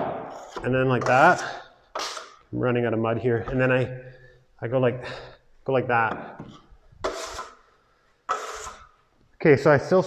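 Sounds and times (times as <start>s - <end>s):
trowel scraping across hawk: 0.3s - 2.4s, 7.0s - 9.0s.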